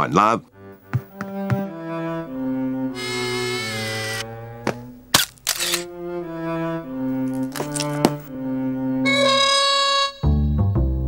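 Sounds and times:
cello-led string music: 0.0s - 11.0s
camera shutter click: 5.2s - 5.9s.

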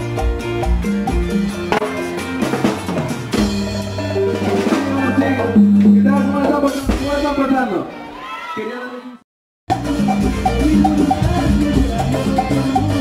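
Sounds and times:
percussion hits: 0.0s - 7.7s, 9.7s - 13.0s
live band playing loudly: 0.0s - 8.2s, 9.7s - 13.0s.

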